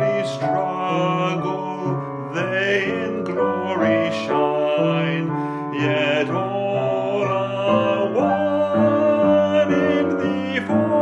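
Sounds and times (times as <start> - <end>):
instrumental accompaniment: 0.0 - 11.0
person singing long notes: 0.0 - 11.0.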